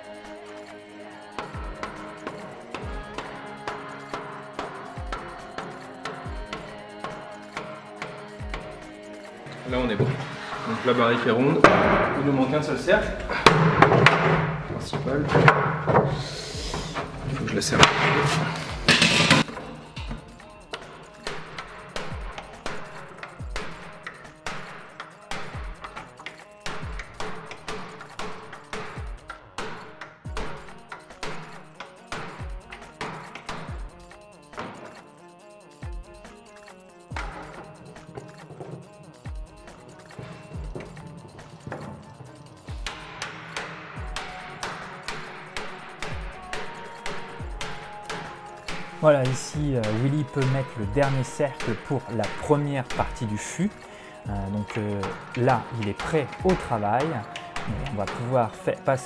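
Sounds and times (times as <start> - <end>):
background music: 0.0 - 59.0.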